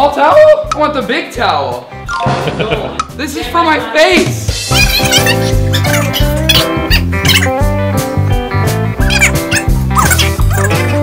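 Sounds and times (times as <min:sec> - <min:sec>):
music with pulsing bass line: 0:04.4 - 0:11.0
high squeaky glides: 0:04.7 - 0:07.5.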